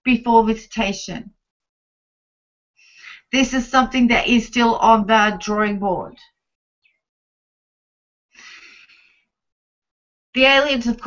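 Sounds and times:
woman inhaling: 8.4 - 9.2.

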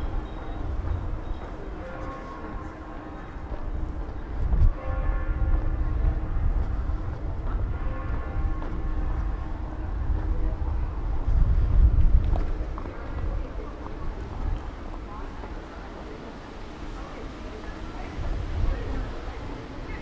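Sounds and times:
low city rumble: 0.0 - 20.0
passers-by talking faintly: 0.0 - 20.0.

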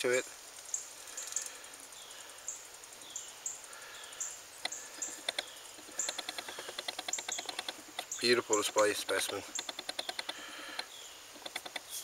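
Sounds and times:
insects chirping: 0.0 - 12.0
quick clicks: 4.6 - 12.0.

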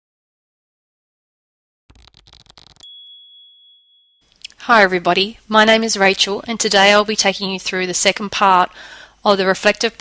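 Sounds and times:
high bell-like ding: 2.8 - 4.3.

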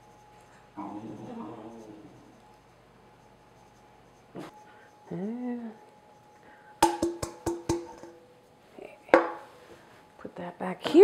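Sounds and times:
steel mixing bowl tapped ringing: 6.8 - 8.3, 9.2 - 9.5.

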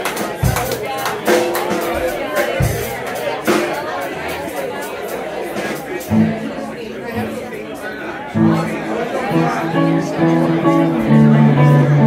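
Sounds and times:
crowd chatter: 0.0 - 12.0
electric guitar held notes: 8.4 - 12.0.

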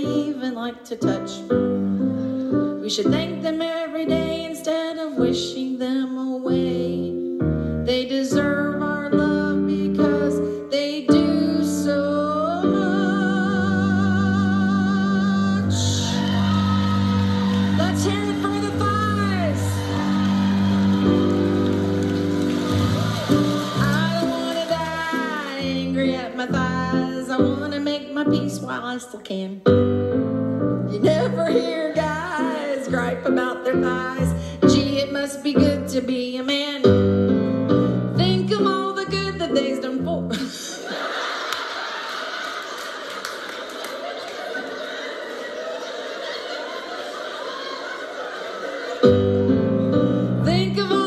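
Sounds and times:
piano chords: 0.0 - 51.0
audience laughing: 15.8 - 25.7, 40.3 - 51.0
audience clapping: 16.1 - 25.9, 41.3 - 48.3.

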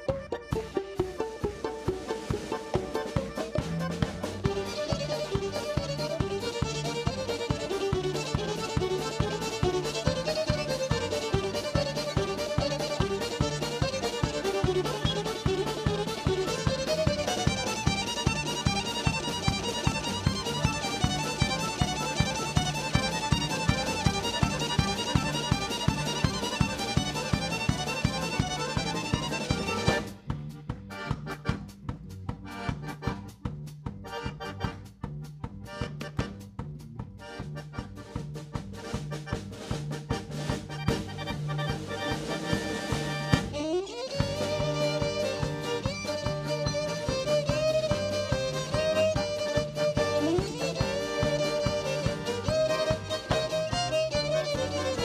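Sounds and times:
violin: 0.0 - 33.4, 39.8 - 55.0
accordions: 0.0 - 55.0
double bass: 0.0 - 55.0
drum kit: 0.0 - 55.0.

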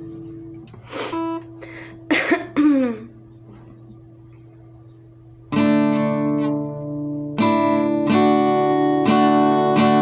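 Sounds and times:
woman coughing: 1.9 - 3.1.

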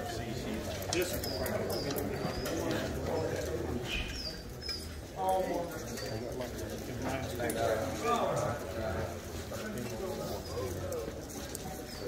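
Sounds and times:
murmur of crowd talking: 0.0 - 12.0.

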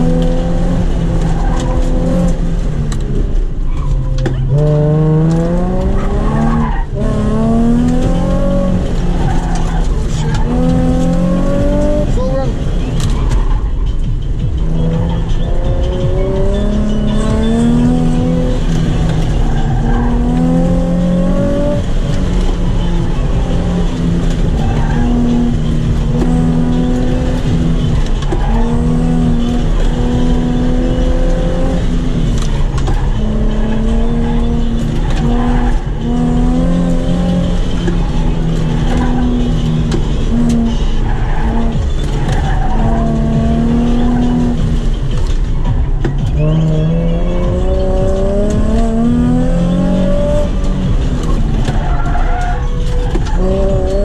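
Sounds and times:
car engine accelerating: 0.0 - 54.0
road and wind noise: 0.0 - 54.0.

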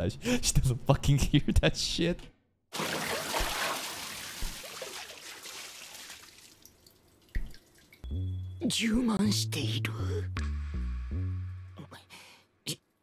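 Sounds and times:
water rushing and splashing: 2.8 - 6.4.

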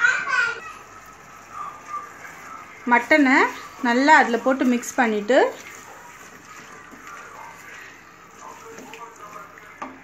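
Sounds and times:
spatula scraping in pot: 1.0 - 10.0.

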